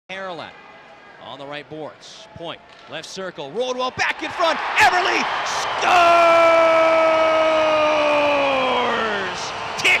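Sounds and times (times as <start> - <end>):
crowd cheering: 3.8 - 10.0.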